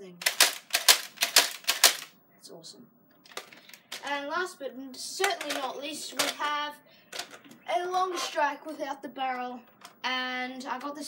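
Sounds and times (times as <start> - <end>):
toy blaster mechanism clicking: 0.2 - 2.1, 5.2 - 6.5.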